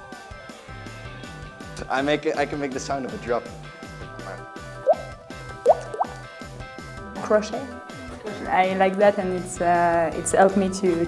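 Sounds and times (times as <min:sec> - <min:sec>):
mouth plop sounds: 0:04.9 - 0:06.3.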